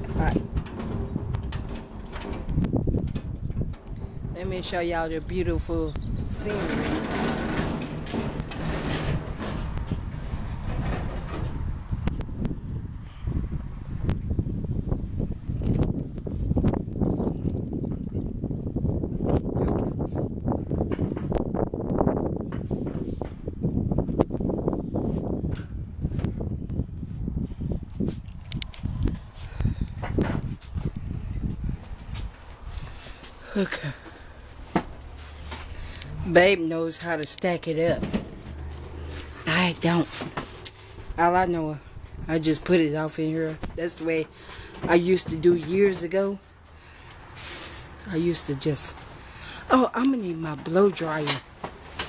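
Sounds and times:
knocks and thumps in metal unit: 0.0 - 4.6, 6.3 - 11.7
steady low rumble: 34.2 - 44.7.

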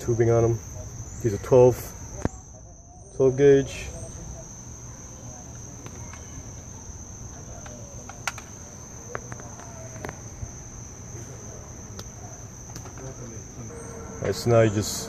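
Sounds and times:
insects buzzing: 0.0 - 15.0.

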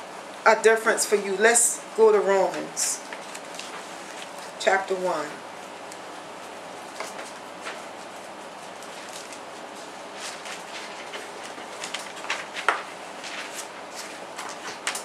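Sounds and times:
paper pages rustling: 3.1 - 4.6, 6.4 - 15.0.

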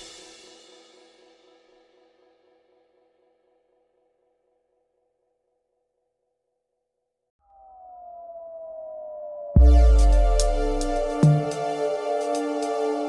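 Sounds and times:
electronic music with falling tone: 7.4 - 13.0
background music: 9.6 - 13.0.

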